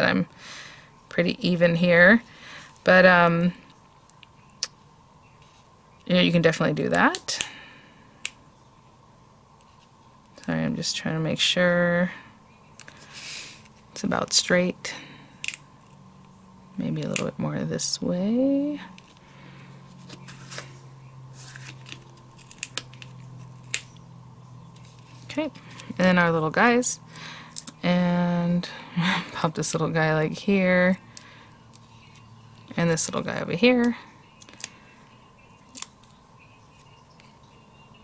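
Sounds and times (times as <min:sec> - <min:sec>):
steady low hum: 0:00.0 - 0:38.0
paper rustling: 0:19.9 - 0:23.8
paper peeling clicks: 0:35.7 - 0:36.2.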